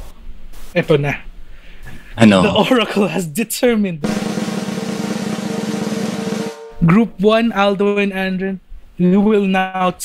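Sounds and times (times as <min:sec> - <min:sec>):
drum roll: 0:04.0 - 0:07.2
low held note: 0:04.1 - 0:07.2.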